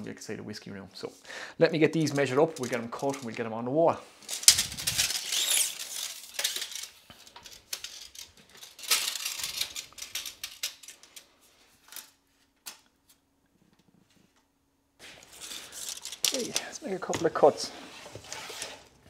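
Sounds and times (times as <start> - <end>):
tape measure blade rattling: 4.3 - 11.3.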